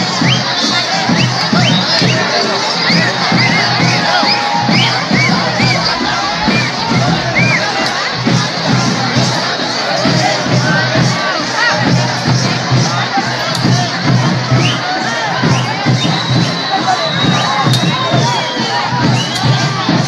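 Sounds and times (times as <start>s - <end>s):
crowd shouting and cheering: 0.0s - 20.0s
low thumps: 3.2s - 9.4s.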